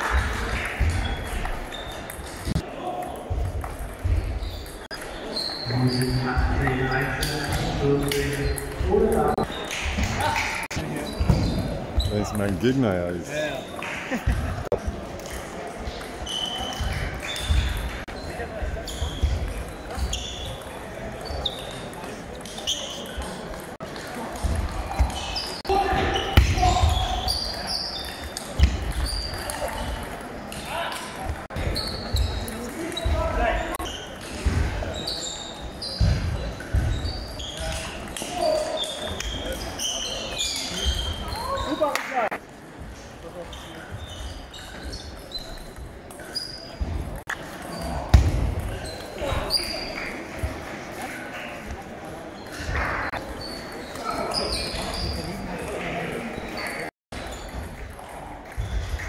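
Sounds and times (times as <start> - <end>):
voices around the hall: 0.0 - 59.0.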